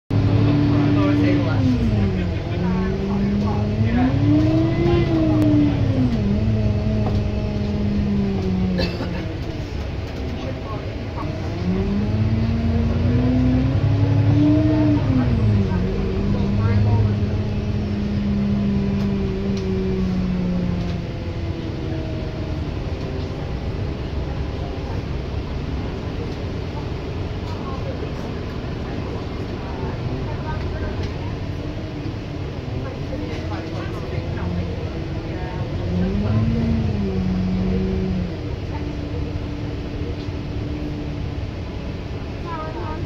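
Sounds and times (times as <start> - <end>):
bus diesel engine: 0.1 - 43.0.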